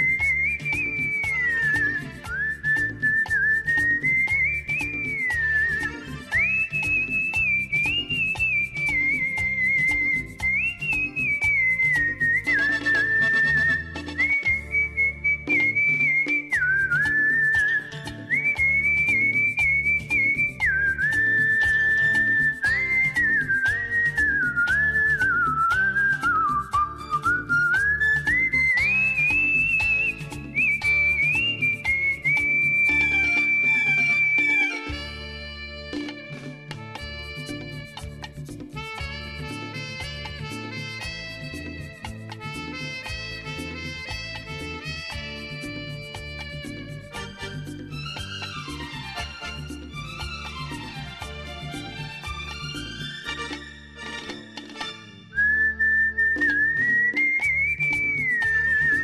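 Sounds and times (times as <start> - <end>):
person whistling a melody: 0.0 - 35.2, 37.0 - 50.8, 55.3 - 59.0
instrumental music with steady beat: 0.0 - 59.0.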